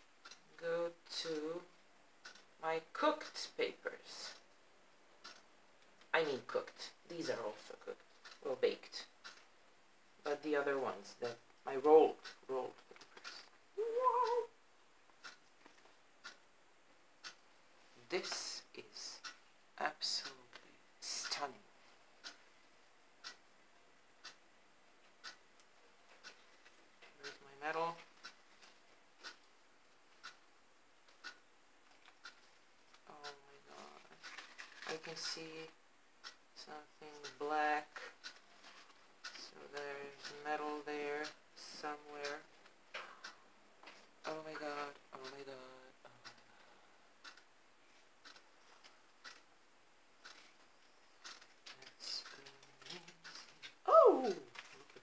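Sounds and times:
woman making ooh sounds: 0:13.8 - 0:14.5, 0:53.8 - 0:54.6
faint clicks: 0:23.2 - 0:23.4, 0:24.2 - 0:24.4, 0:25.0 - 0:27.4, 0:31.0 - 0:33.4, 0:46.2 - 0:47.5, 0:48.2 - 0:49.5.

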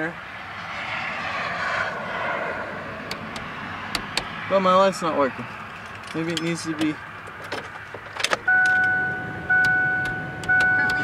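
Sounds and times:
two-note warning chime: 0:08.5 - 0:11.0.

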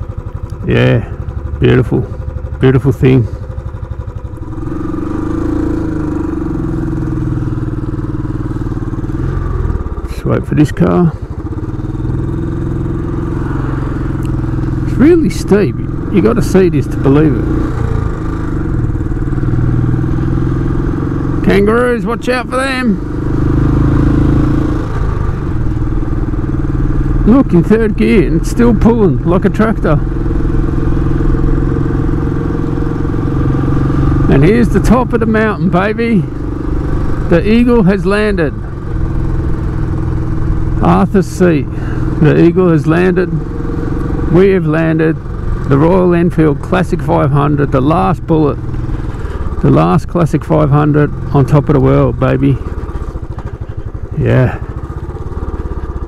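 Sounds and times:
motorcycle engine pulling away: 0:00.0 - 0:56.0.

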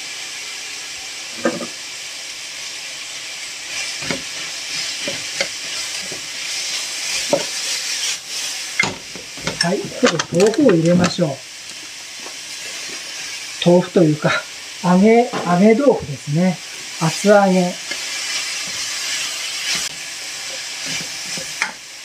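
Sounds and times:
food sizzling in a frying pan: 0:00.0 - 0:22.0.

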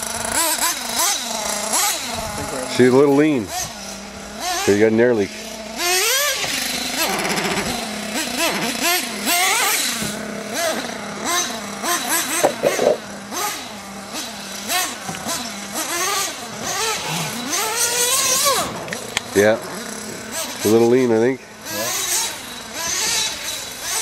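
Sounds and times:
small engine high whine: 0:00.0 - 0:24.0
brief clatter: 0:12.4 - 0:13.0.

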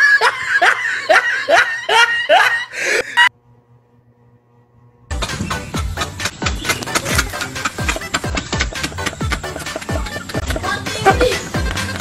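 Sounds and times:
laughter in rising notes: 0:00.0 - 0:03.3, 0:05.1 - 0:10.8.

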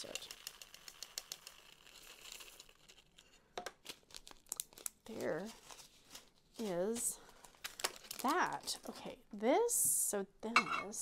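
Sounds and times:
small beads clicking: 0:00.0 - 0:02.8
plastic bag crinkling: 0:00.0 - 0:09.0.

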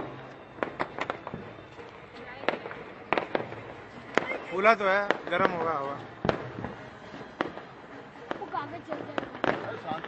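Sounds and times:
firecrackers cracking: 0:00.0 - 0:10.0.

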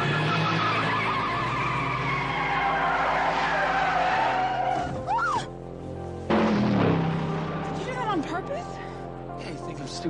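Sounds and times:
engines under full throttle: 0:00.0 - 0:04.0, 0:06.3 - 0:08.5.

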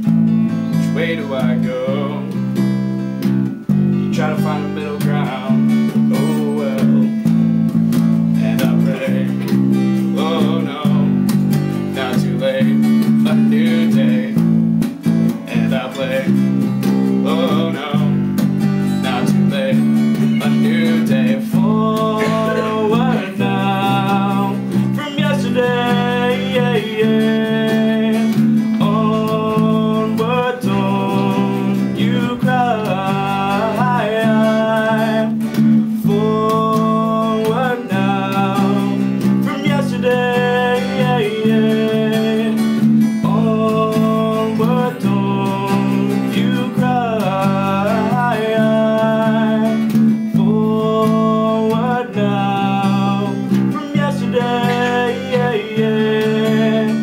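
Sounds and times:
acoustic guitar strumming: 0:00.0 - 0:57.0
bass guitar: 0:00.0 - 0:57.0
person singing long notes: 0:04.1 - 0:07.3, 0:19.0 - 0:42.6, 0:43.2 - 0:57.0.

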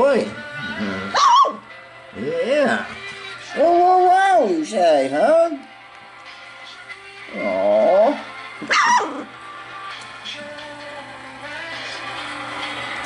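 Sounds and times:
puppy whining: 0:00.5 - 0:01.7, 0:07.3 - 0:09.3
puppy yelp: 0:01.2 - 0:01.6, 0:08.7 - 0:09.2.

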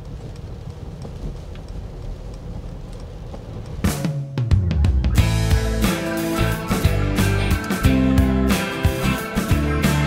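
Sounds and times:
rain ticking on car: 0:00.0 - 0:04.2
road and tyre noise in car: 0:00.0 - 0:04.2
music: 0:03.8 - 0:10.0.

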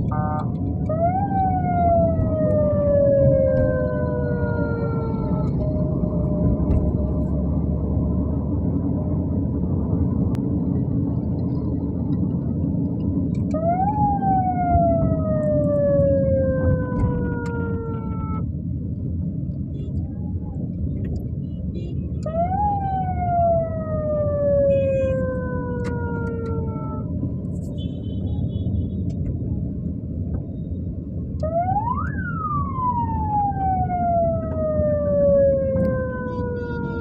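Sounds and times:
siren wailing: 0:00.0 - 0:07.8, 0:13.4 - 0:18.5, 0:22.2 - 0:27.4, 0:31.4 - 0:37.0
car engine and tyres: 0:00.0 - 0:37.0
traffic rumble: 0:00.0 - 0:37.0.

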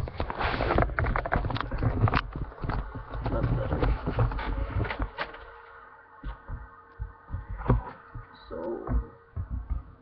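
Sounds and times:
faint steady hum: 0:00.0 - 0:10.0
soft low handling thumps: 0:06.1 - 0:10.0.

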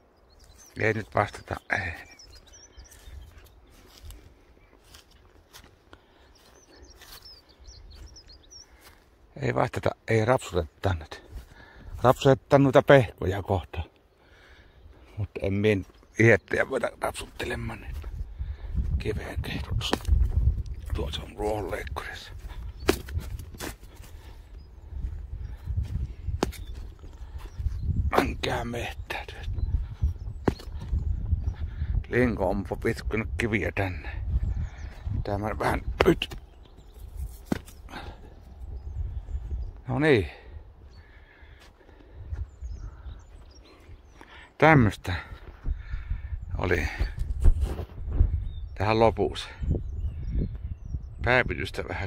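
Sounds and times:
small birds chirping: 0:00.0 - 0:52.0
footsteps on dry grass: 0:01.7 - 0:09.3, 0:11.2 - 0:12.3, 0:14.9 - 0:33.0, 0:33.8 - 0:39.8
wind rumble: 0:17.6 - 0:39.8, 0:45.5 - 0:48.8
microphone handling noise: 0:17.8 - 0:21.4, 0:22.0 - 0:32.8, 0:45.4 - 0:48.7.

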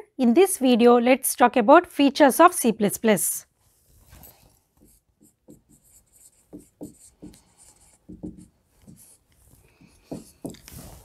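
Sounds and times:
marker writing on whiteboard: 0:04.7 - 0:11.0.

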